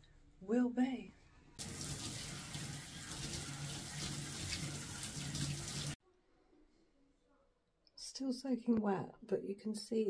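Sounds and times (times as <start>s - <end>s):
shower water spraying: 1.6s - 6.0s.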